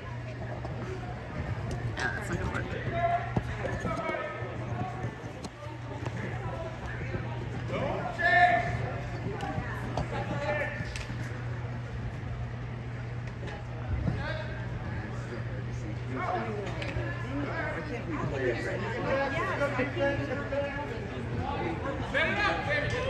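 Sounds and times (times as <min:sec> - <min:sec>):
steady low hum: 0:00.0 - 0:23.0
distant shouting voices: 0:01.1 - 0:11.6.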